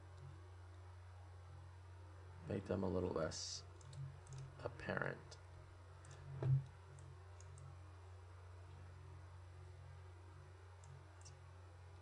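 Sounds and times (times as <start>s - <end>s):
steady low hum: 0.0s - 12.0s
computer mouse clicks: 3.8s - 4.5s, 6.0s - 7.7s, 10.8s - 11.4s.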